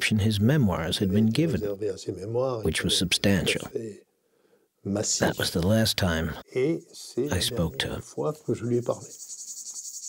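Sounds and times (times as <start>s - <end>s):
man's voice: 0.0s - 4.0s, 4.9s - 9.0s
crickets chirping: 5.0s - 10.0s.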